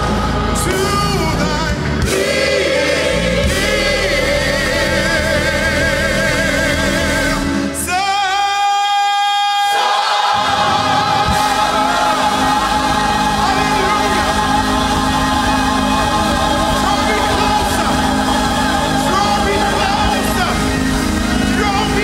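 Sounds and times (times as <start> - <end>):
gospel choir singing: 0.0 - 22.0.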